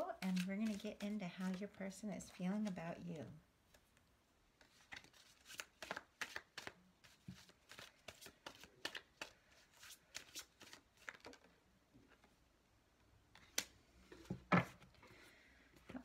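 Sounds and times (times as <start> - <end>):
cards being shuffled: 0.0 - 1.6, 4.6 - 12.3.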